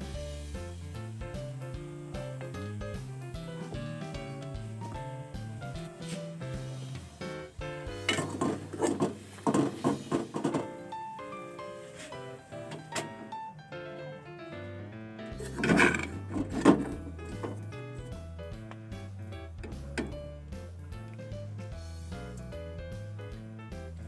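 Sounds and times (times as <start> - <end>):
background music melody: 0.0 - 24.0
fork stirring noodles in metal pot: 15.4 - 16.8.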